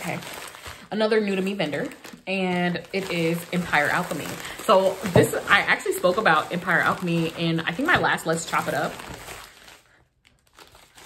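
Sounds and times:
paper packet crinkling: 0.0 - 11.0.

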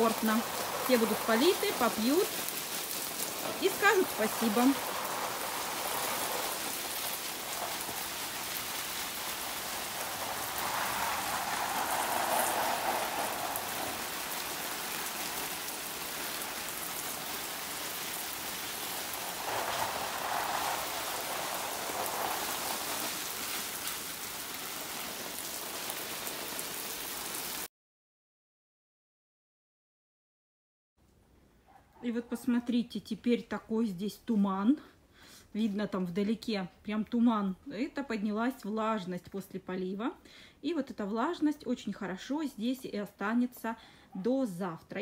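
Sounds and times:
hose spray pattering on leaves: 0.0 - 27.7.

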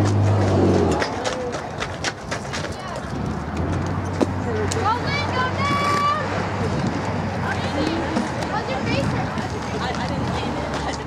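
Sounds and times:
faint voices: 4.2 - 11.0.

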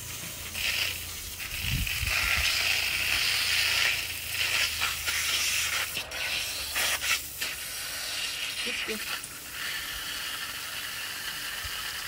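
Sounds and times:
water splashing from hose: 0.0 - 12.0.

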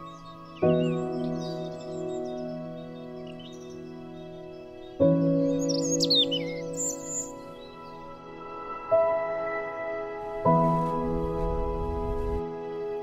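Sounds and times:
birdsong chirps: 0.0 - 10.0
new-age music of held chords: 0.0 - 13.0.

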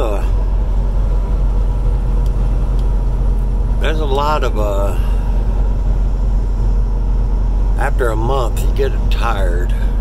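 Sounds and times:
car engine and tyre noise: 0.0 - 10.0.

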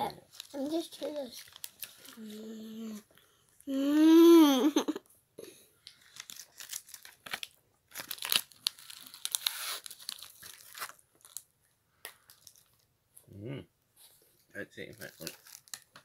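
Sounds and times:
wrapper crinkling: 0.2 - 3.0, 5.9 - 11.5, 12.2 - 12.8, 14.8 - 16.0.

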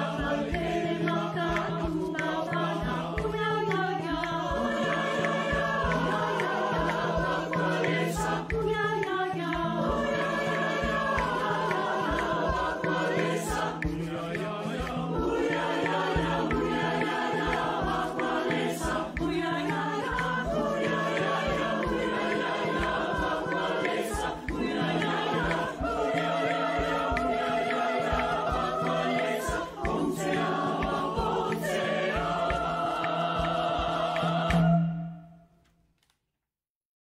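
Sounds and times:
mixed choir singing: 0.0 - 35.4
steady percussion beat: 0.0 - 35.4.

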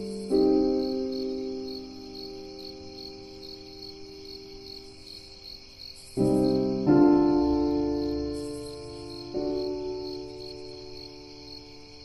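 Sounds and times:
crickets chirping: 0.0 - 12.0
piano chord ringing: 6.2 - 11.7.

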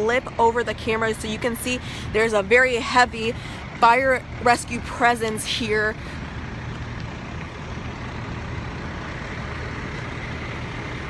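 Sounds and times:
fire truck engine rumble: 0.0 - 11.0.

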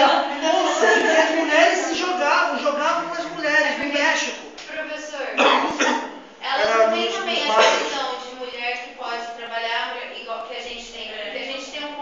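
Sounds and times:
person lecturing: 0.0 - 4.6, 5.4 - 8.0.

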